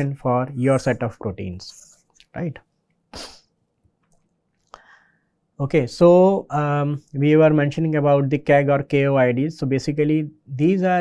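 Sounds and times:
man sniffing: 3.1 - 3.6.

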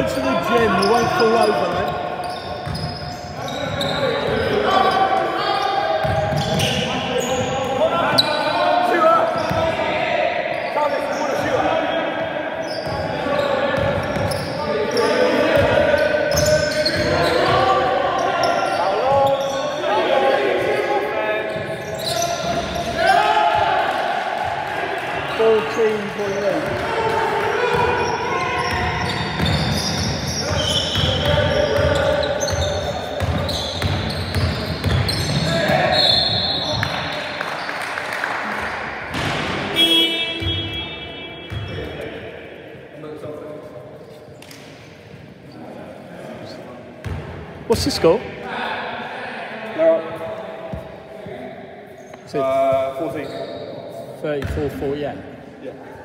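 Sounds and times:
indistinct shouts and talk: 0.0 - 37.5.

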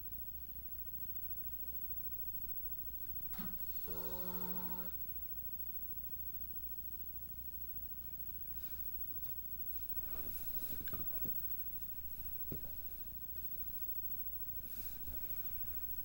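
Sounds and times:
rustling of fabric blanket: 8.0 - 16.0.

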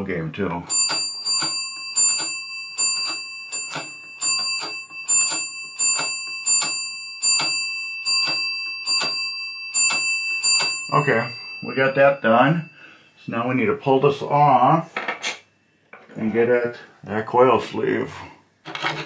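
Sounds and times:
pinball match unit clicking: 0.7 - 6.8
pinball bell ringing: 0.7 - 13.1.

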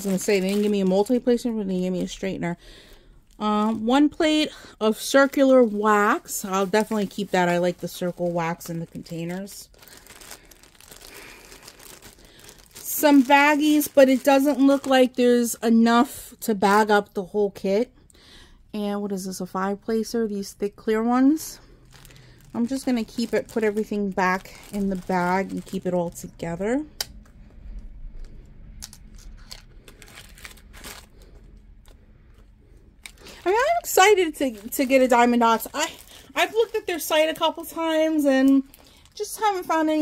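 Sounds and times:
plastic baggie crinkling: 0.0 - 15.6, 21.3 - 32.4, 33.0 - 40.0.

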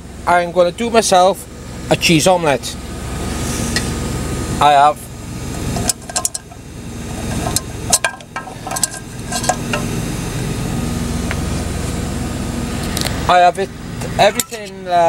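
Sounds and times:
truck engine idling: 0.0 - 15.0.

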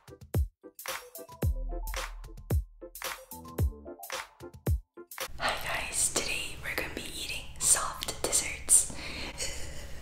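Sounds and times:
women whispering: 5.4 - 8.9.

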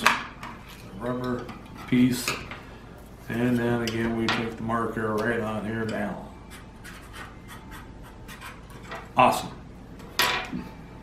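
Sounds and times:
marker pen scratching on plastic: 6.5 - 8.8.

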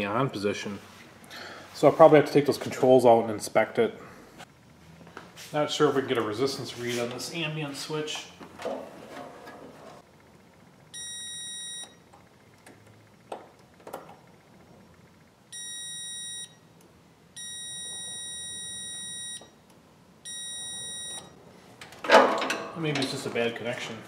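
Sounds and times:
multimeter continuity beeps: 10.9 - 12.1, 15.5 - 16.7, 17.4 - 19.6, 20.2 - 21.4.

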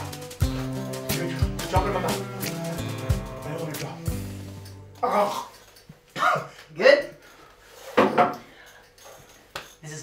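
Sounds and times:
man talking: 1.1 - 2.5.

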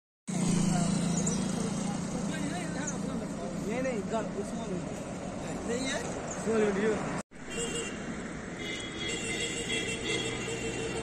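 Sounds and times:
vehicle engine humming: 0.3 - 11.0.

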